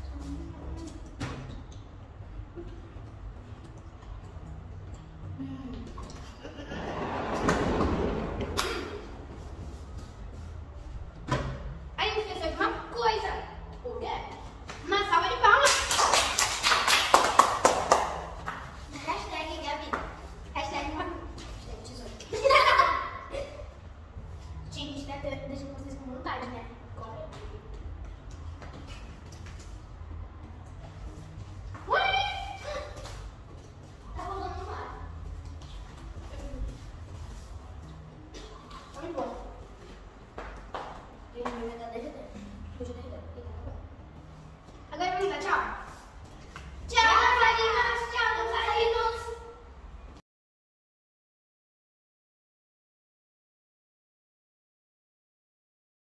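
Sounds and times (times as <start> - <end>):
hand claps: 15.6 - 18.7.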